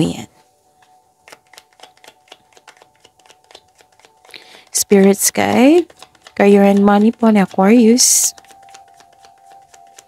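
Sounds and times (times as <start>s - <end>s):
cards being shuffled: 0.3s - 10.0s.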